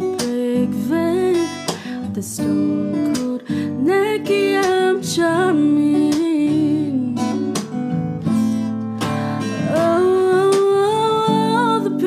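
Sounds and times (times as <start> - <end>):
strummed acoustic guitar chords: 0.0 - 12.0.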